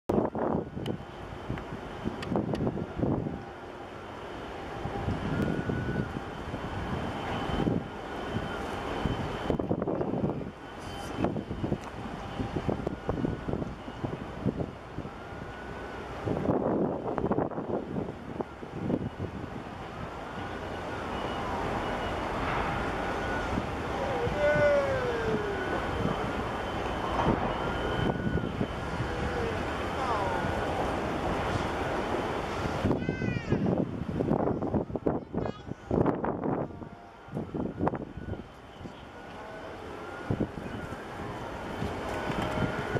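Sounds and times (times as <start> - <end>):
wind buffeting microphone: 0.1 - 3.6, 4.7 - 20.3, 21.4 - 38.9, 40.1 - 42.9.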